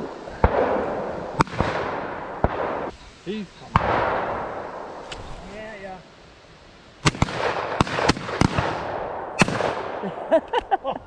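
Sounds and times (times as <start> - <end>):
shotgun shots with echo: 1.4 - 2.9, 7.0 - 10.0.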